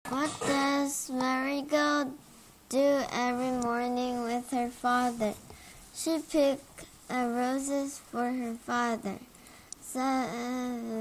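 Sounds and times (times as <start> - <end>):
girl speaking in long syllables: 0.1 - 11.0.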